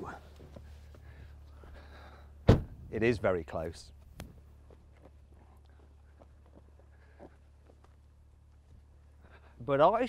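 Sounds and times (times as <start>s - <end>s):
faint footsteps on tarmac: 0.0s - 10.0s.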